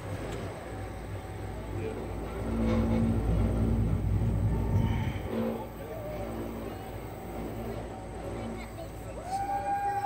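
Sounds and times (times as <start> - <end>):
lift cabin rumble and hum: 0.0 - 10.0.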